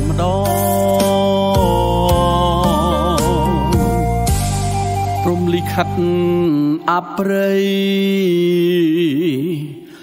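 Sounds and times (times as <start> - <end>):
man singing slow song: 0.0 - 4.2, 5.2 - 10.0
backing music bass: 0.0 - 6.6.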